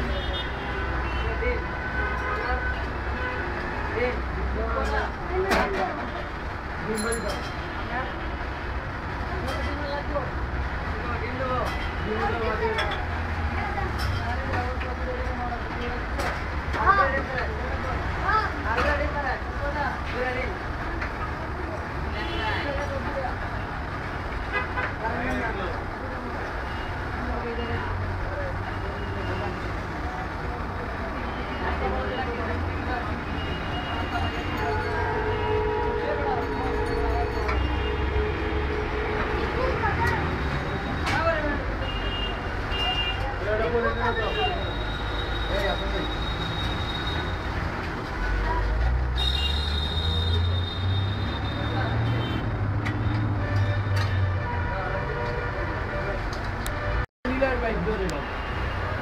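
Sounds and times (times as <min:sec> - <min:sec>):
traffic rumble: 0:00.0 - 0:59.0
vehicle horn: 0:35.0 - 0:36.9, 0:49.2 - 0:52.5.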